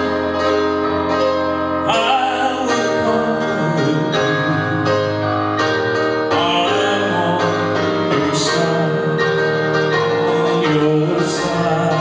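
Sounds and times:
instrumental accompaniment: 0.0 - 12.0
man singing into microphone: 1.8 - 12.0.

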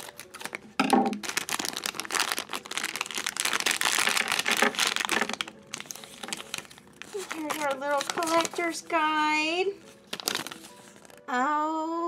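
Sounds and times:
plastic foil bag crinkling: 0.0 - 9.0, 9.8 - 11.3.

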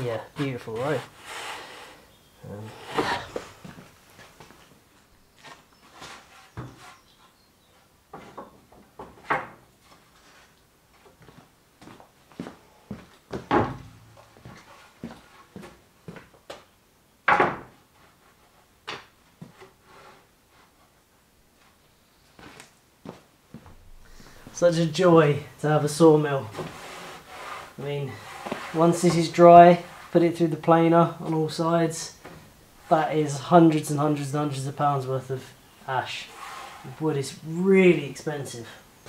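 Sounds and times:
wooden boards knocking: 17.3 - 17.8.

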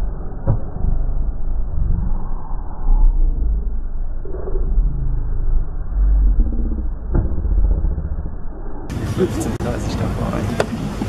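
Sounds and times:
muffled low rumble: 0.0 - 11.0.

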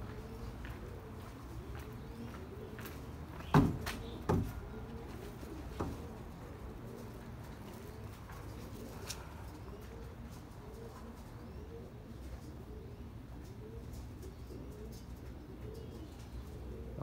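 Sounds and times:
pigeons cooing: 0.0 - 17.0.

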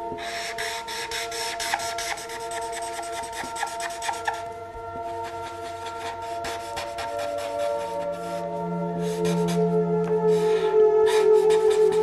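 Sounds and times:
soft background music: 0.0 - 12.0
marker scratching on paper: 1.3 - 4.4, 5.9 - 8.4.

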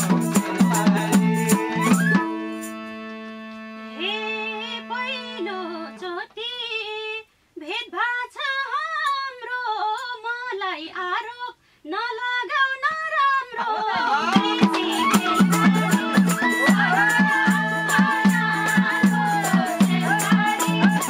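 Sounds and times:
woman singing folk verse: 0.0 - 1.9, 3.9 - 21.0
harmonium held chord: 0.0 - 6.0.

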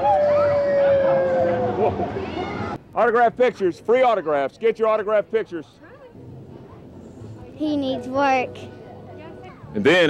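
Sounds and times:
spectators yelling and cheering: 0.0 - 2.8.

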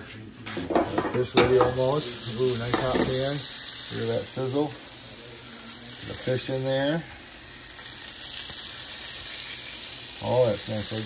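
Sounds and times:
fish searing in a pan: 1.4 - 11.0.

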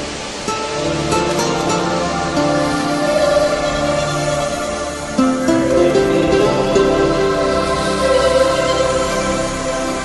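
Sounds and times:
choir-like sustained chords: 0.0 - 10.0.

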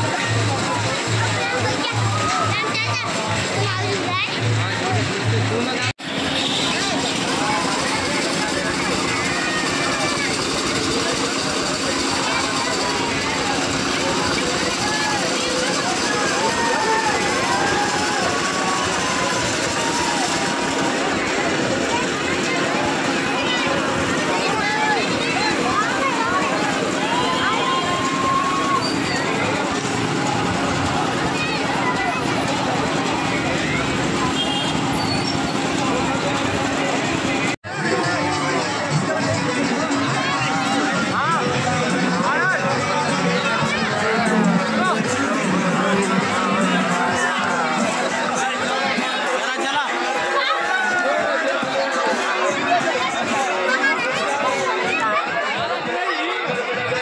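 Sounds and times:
crowd chattering: 0.0 - 57.0
many voices: 0.0 - 57.0.

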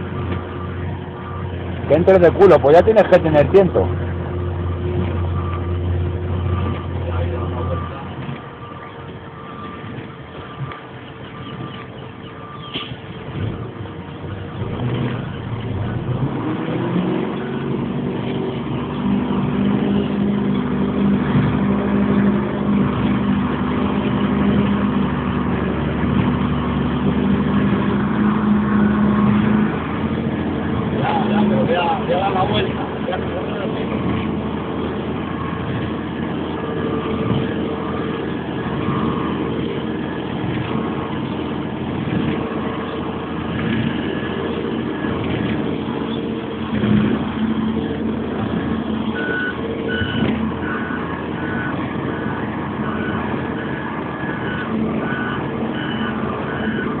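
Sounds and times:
garbage truck engine under load: 0.0 - 57.0.

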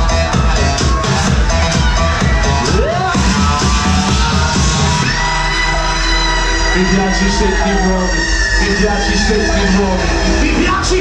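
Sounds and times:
kick drum beat: 0.0 - 5.0
electronic dance music: 0.0 - 11.0
long high synth tone: 4.4 - 10.5.

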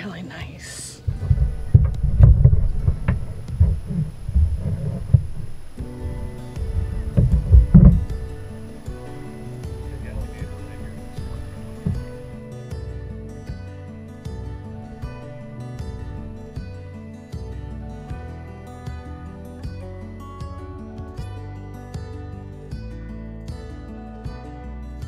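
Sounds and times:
background music with sustained notes: 0.0 - 25.0
rumbling and knocks on microphone: 1.1 - 12.4.

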